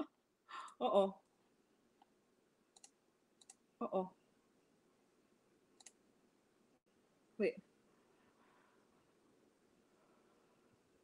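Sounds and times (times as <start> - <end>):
computer mouse clicks: 2.7 - 3.6, 5.8 - 6.0.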